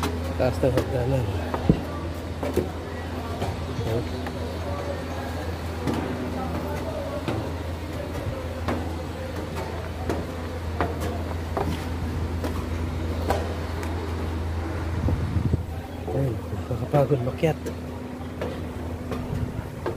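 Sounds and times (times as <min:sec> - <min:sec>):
low machine hum: 0:00.0 - 0:19.9.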